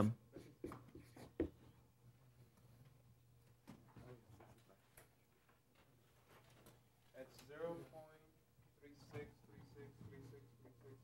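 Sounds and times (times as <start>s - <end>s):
marker writing on whiteboard: 0.4s - 1.7s.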